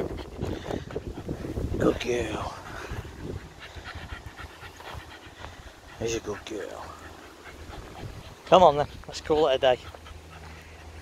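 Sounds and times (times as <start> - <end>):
dog panting quickly: 0.0 - 11.0.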